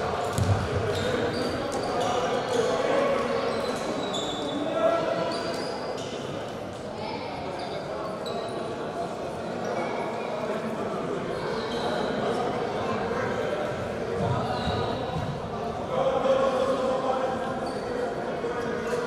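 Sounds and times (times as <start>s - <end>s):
many voices talking and calling: 0.0s - 19.0s
basketball bouncing: 0.3s - 1.0s.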